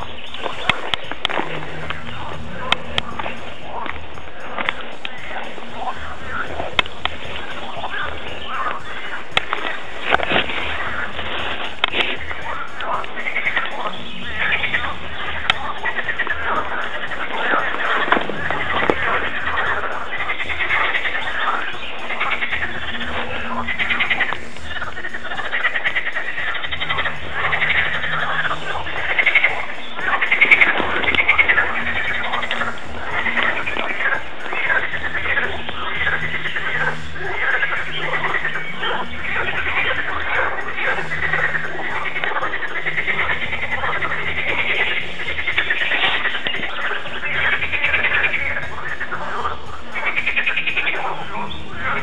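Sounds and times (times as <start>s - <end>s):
background music bass line: 0.0s - 52.0s
frogs croaking: 0.0s - 52.0s.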